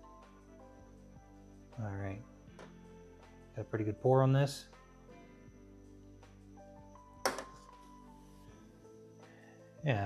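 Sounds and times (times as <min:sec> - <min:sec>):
quiet background music: 0:00.0 - 0:10.0
can knocking on table: 0:07.2 - 0:07.6.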